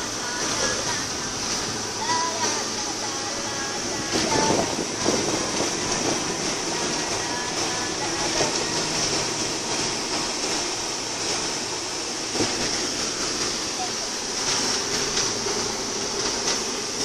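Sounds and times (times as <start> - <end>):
car road and wind noise: 3.4 - 10.1.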